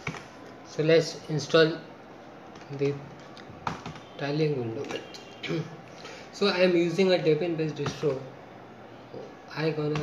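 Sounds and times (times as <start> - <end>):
computer keyboard keys clicking: 2.5 - 4.1.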